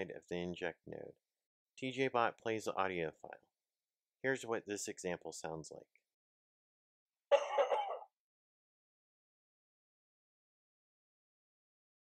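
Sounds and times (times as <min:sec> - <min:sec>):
man coughing: 0:07.3 - 0:08.1.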